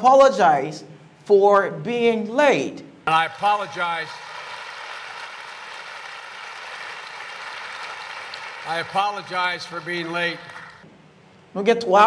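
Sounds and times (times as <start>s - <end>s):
audience applauding: 3.1s - 10.8s.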